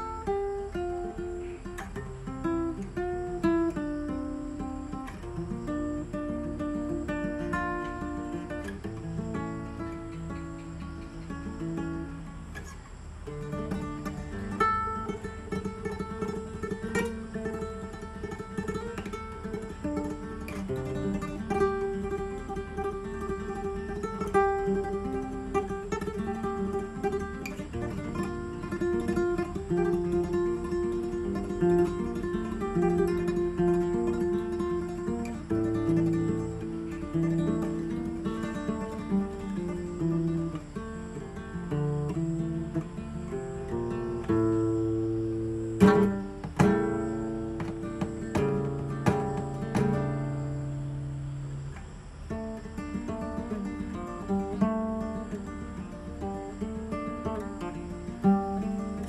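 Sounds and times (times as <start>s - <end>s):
acoustic guitar music: 0.0s - 59.0s.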